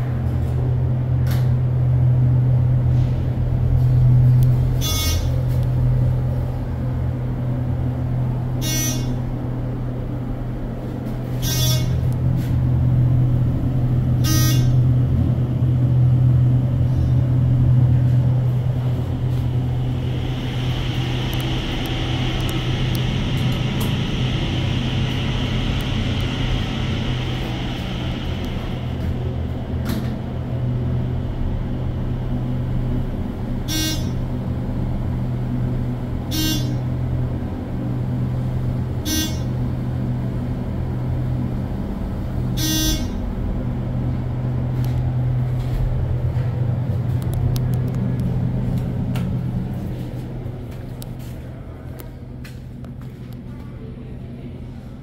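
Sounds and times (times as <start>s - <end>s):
elevator low hum: 0.0s - 55.0s.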